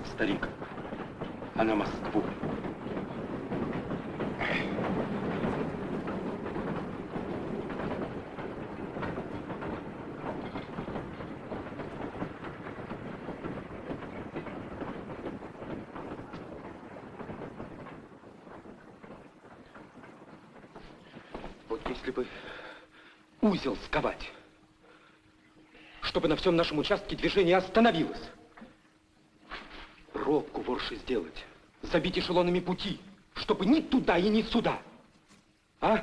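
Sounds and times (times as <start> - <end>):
freight train rumble: 0.0 - 36.0
wheel clatter on rails: 0.0 - 36.0.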